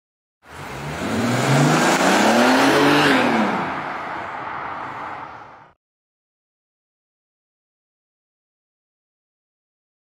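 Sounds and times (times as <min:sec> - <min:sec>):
car engine revving: 0:00.5 - 0:04.3.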